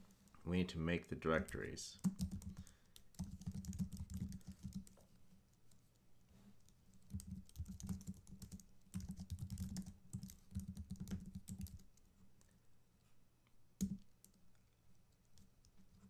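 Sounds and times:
typing on computer keyboard: 2.0 - 5.0, 7.1 - 12.0, 13.8 - 14.4.

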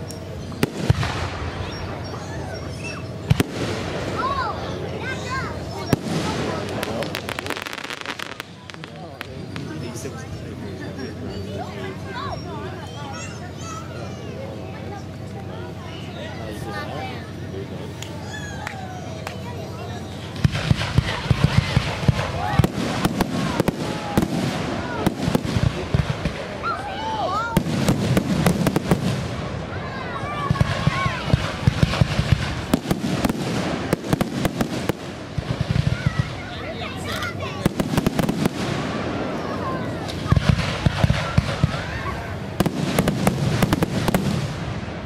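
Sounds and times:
fireworks bangs and crackles: 0.0 - 11.4, 17.4 - 45.0.

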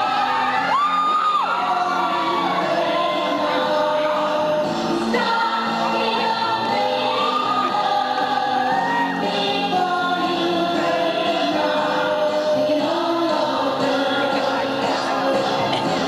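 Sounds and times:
women singing together: 0.0 - 16.0.

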